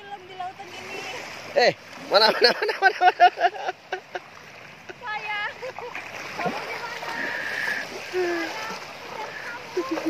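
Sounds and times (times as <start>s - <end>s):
sea water splashing: 0.0s - 10.0s.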